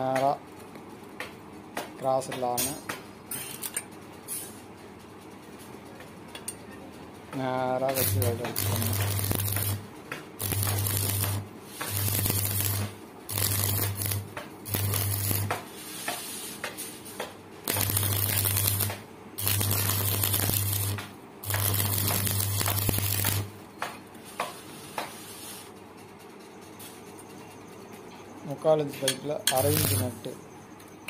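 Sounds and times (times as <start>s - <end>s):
welding arc crackling and hissing: 7.4s - 23.6s, 29.5s - 30.3s.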